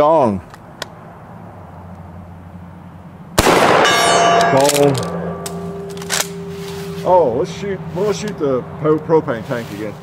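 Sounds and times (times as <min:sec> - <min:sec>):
shotgun firing: 0:03.4 - 0:06.5
steel gong ringing: 0:03.8 - 0:08.3.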